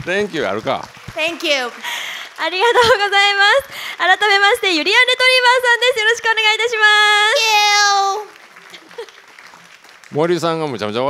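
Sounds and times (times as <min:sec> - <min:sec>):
audience applause: 0:00.0 - 0:04.9, 0:07.4 - 0:11.0.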